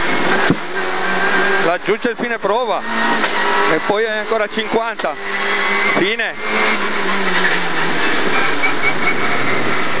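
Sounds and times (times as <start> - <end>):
car engine whine: 0.0 - 10.0.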